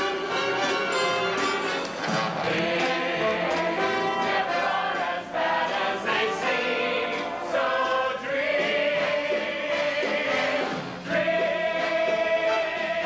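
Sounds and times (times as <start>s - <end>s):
instrumental accompaniment: 0.0s - 13.0s
group of voices singing: 2.1s - 13.0s.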